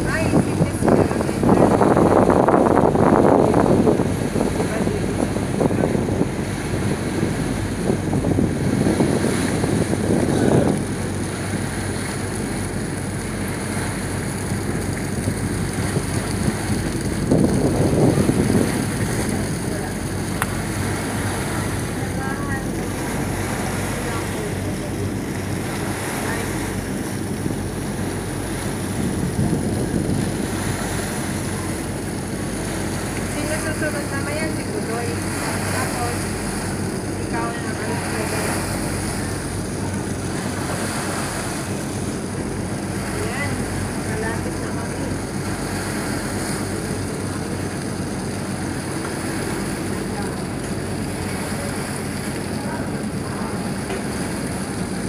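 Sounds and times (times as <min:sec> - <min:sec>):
ferry engine drone: 0:00.0 - 0:55.0
water rushing along hull: 0:00.0 - 0:55.0
wind buffeting microphone: 0:00.0 - 0:55.0.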